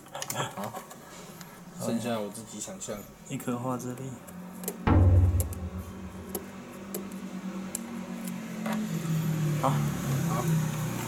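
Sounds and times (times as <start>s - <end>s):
heavy low thump: 4.9s - 6.5s.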